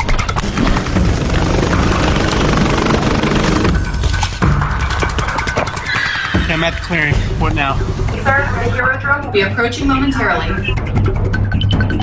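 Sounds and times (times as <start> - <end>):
drone propellers whirring: 0.3 - 4.0.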